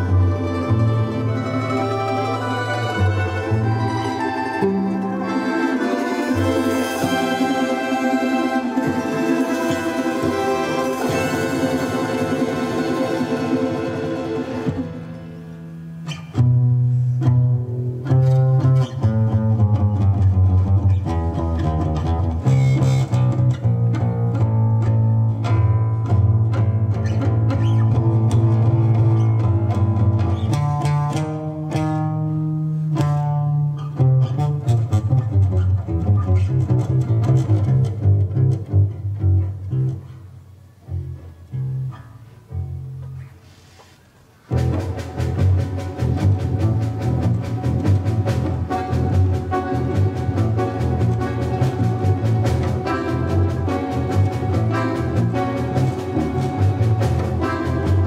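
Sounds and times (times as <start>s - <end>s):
folk instrument orchestra: 0.0s - 42.5s, 43.4s - 58.0s
plucked deep bass notes: 14.7s - 40.1s, 44.5s - 58.0s.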